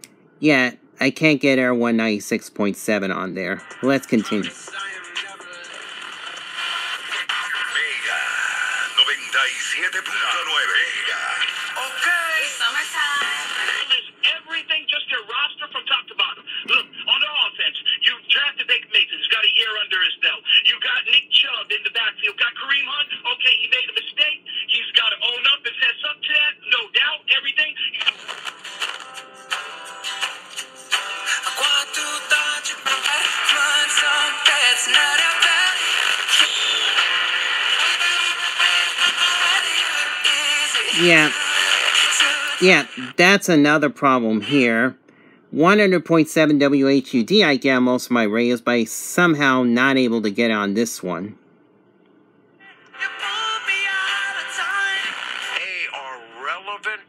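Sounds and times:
music with singing on radio: 3.4s - 43.2s, 52.6s - 57.0s
talk radio through small speaker: 3.7s - 28.5s, 35.7s - 43.2s.

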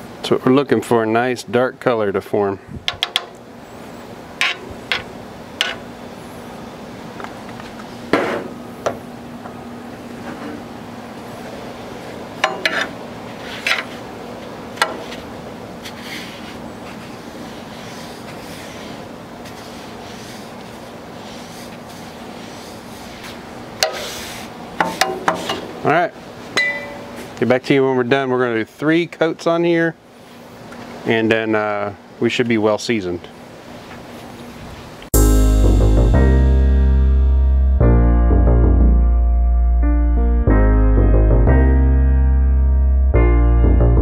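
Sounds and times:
steady background hiss: 0.0s - 35.6s.

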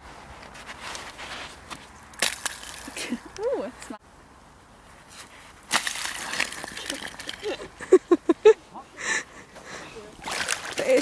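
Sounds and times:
ice cracking: 2.2s - 3.1s, 5.7s - 7.6s
ice fragments skittering: 2.2s - 3.1s, 5.7s - 7.6s.

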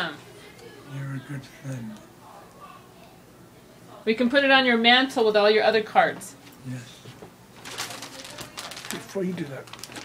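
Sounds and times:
paper rustling and crackling: 7.6s - 10.0s.

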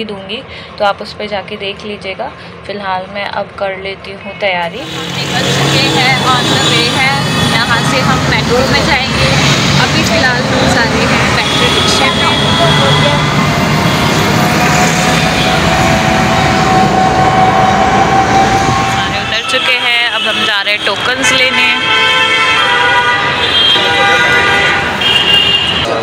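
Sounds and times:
voices: 0.0s - 13.5s, 18.9s - 21.9s
road traffic: 0.0s - 26.0s
auto-rickshaw engine: 4.8s - 19.3s.

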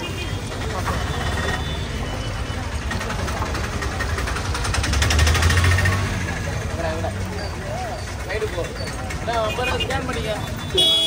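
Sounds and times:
vehicle engine running: 2.6s - 11.0s.

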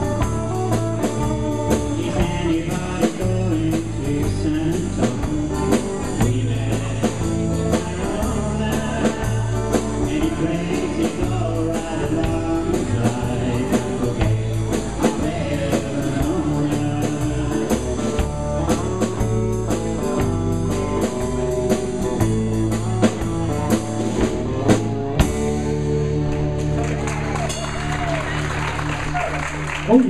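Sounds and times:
person singing: 0.0s - 19.2s
live blues-rock band: 0.0s - 30.0s
steady drum beat: 0.0s - 30.0s.

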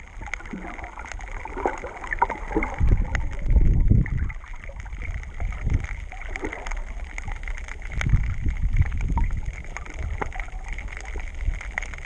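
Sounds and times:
water rushing underwater: 0.0s - 12.0s
faint clicks: 4.2s - 12.0s.

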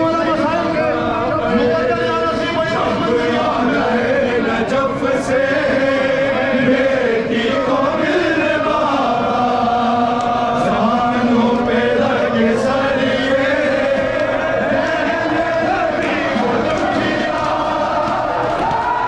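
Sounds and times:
person leading chant through microphone: 0.0s - 19.0s
crowd of men chanting: 0.2s - 19.0s.

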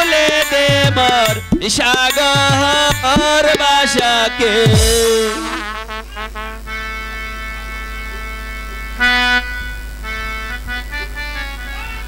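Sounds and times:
low electrical hum: 4.6s - 12.0s
instrument holding steady note: 4.7s - 12.0s.

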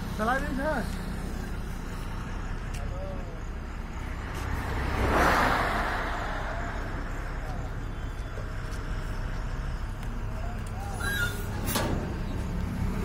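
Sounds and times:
road vehicle passing: 0.0s - 13.0s
steady low rumble: 0.0s - 13.0s.

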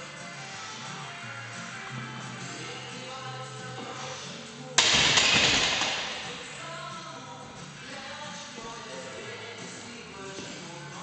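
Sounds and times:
music playing: 0.0s - 11.0s
barbell clanging on metal hooks: 4.8s - 6.4s.

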